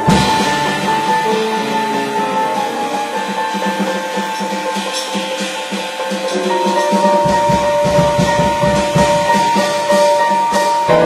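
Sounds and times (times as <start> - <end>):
acoustic piano: 0.0 - 11.0
drum kit: 0.0 - 11.0.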